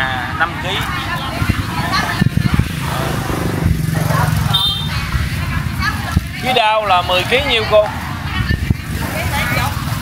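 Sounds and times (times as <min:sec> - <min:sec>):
people talking: 0:00.0 - 0:10.0.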